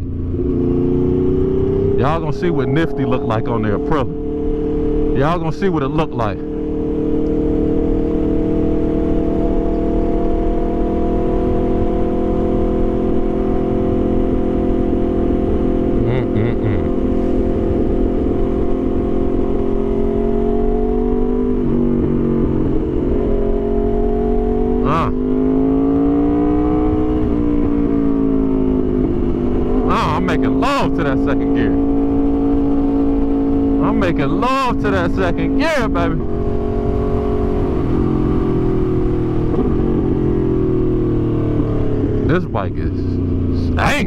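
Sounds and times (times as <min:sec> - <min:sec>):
motorcycle engine running: 0:00.0 - 0:44.0
wind noise: 0:36.0 - 0:42.2.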